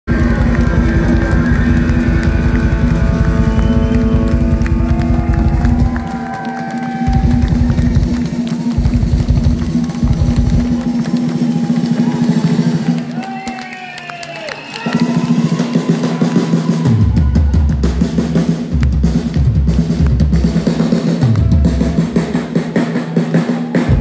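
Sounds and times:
low droning bass note: 0:00.1 - 0:06.0
live rock band playing: 0:00.1 - 0:13.2.

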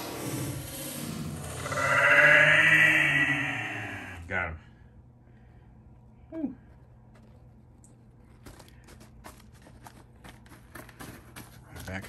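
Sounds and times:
low steady hum: 0:03.0 - 0:12.0.

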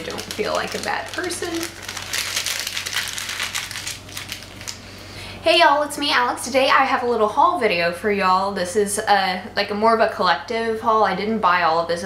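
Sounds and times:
paper receipt crumpling: 0:00.0 - 0:04.8.

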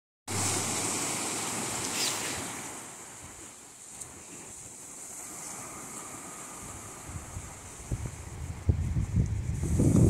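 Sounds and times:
small waves washing up beach: 0:00.3 - 0:10.0.

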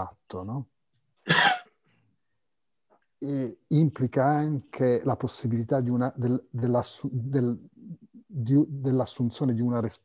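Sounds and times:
man coughing: 0:01.3 - 0:01.7.

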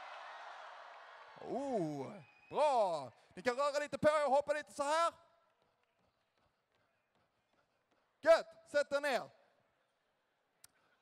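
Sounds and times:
man speaking over microphone: 0:08.2 - 0:09.4.

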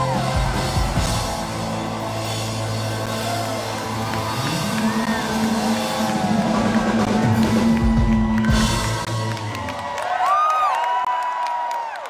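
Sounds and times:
live rock band playing: 0:00.0 - 0:09.9.

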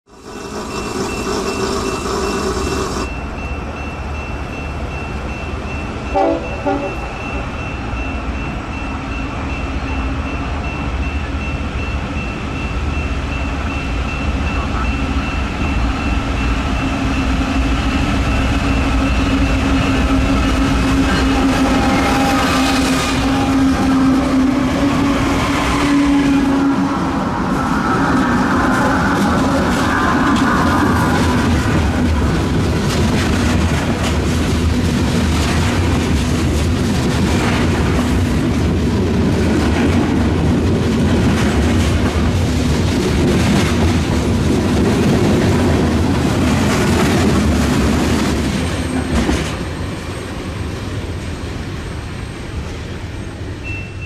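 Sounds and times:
locomotive engine drone: 0:00.0 - 0:54.0
train rumbling on rails: 0:00.0 - 0:54.0
crossing bell ringing: 0:00.1 - 0:32.8, 0:53.2 - 0:54.0
train horn blasts: 0:06.1 - 0:07.2, 0:20.0 - 0:27.7.

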